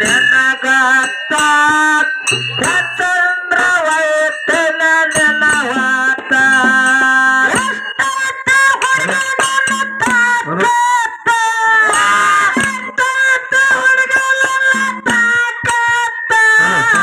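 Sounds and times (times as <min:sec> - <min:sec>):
folk singing over loudspeakers: 0:00.0 - 0:17.0.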